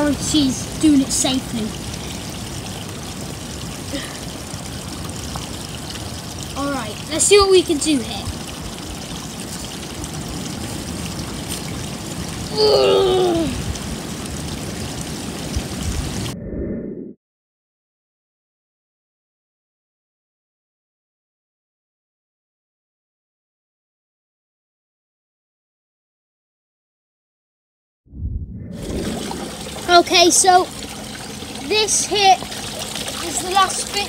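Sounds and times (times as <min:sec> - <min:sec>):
pond water splashing: 0:00.0 - 0:16.4, 0:28.8 - 0:34.0
wind buffeting microphone: 0:09.9 - 0:16.5, 0:28.1 - 0:30.7.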